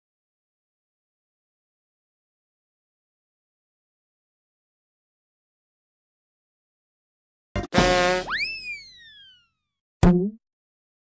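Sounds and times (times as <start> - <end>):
cartoon boing sound effect: 7.7 - 9.4, 10.0 - 10.4.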